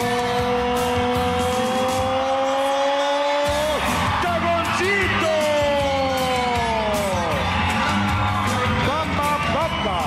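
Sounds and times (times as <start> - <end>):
loud entrance music: 0.0 - 10.0.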